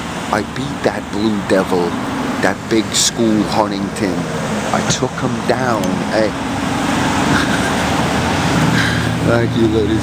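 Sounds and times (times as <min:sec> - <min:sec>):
road traffic: 0:00.0 - 0:10.0
vehicle engine humming: 0:00.0 - 0:10.0.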